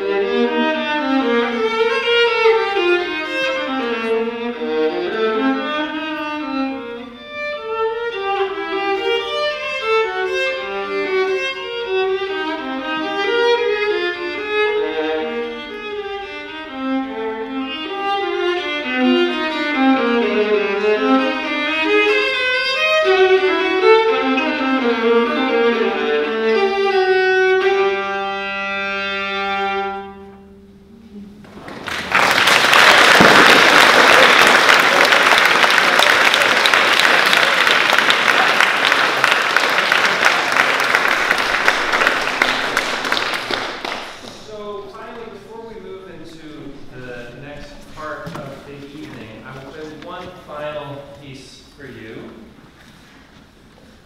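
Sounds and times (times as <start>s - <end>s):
solo violin playing: 0.0s - 31.3s, 33.2s - 51.2s.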